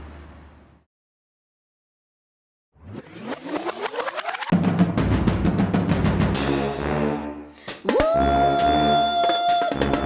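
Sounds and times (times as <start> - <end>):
rising pitch sweep over ticking: 2.8 - 4.5
drum-heavy music: 4.5 - 10.0.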